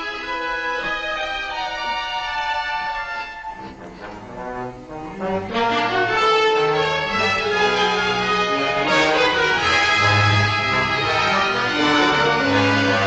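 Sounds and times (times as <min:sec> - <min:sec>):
low deep orchestral notes: 0:00.0 - 0:13.0
orchestral horror score: 0:00.0 - 0:13.0.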